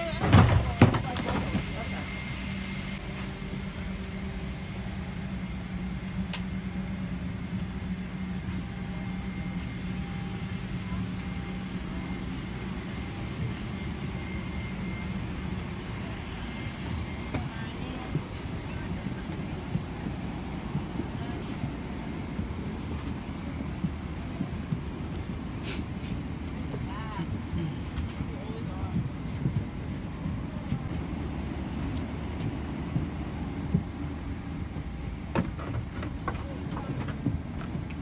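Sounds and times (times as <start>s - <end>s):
air-conditioning hum and rush: 0.0s - 38.0s
low voices of passengers: 0.0s - 38.0s.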